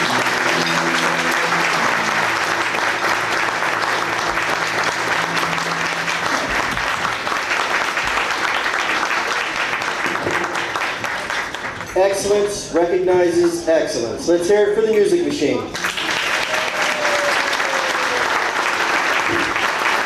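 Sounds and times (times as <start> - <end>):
audience applauding: 0.0 - 12.4, 15.7 - 20.0.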